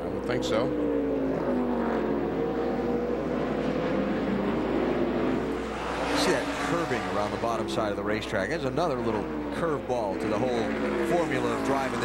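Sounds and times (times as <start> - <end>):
race car engine revs falling: 1.4 - 9.6
man talking: 6.1 - 12.0.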